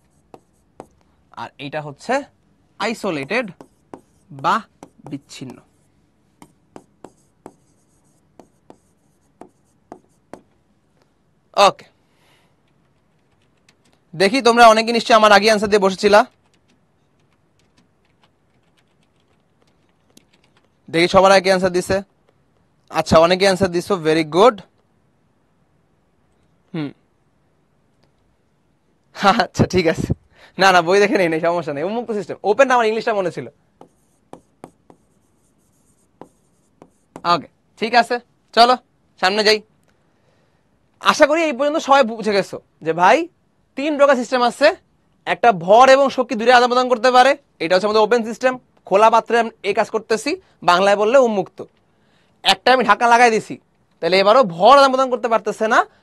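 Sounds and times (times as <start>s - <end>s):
pen tapping on touchscreen: 0.0s - 1.0s, 3.5s - 5.8s, 6.4s - 10.6s, 33.8s - 37.3s.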